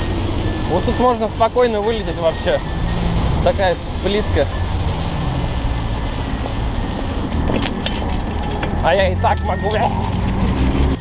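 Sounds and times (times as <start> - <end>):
car traffic passing: 0.0 - 11.0
wind: 0.0 - 11.0.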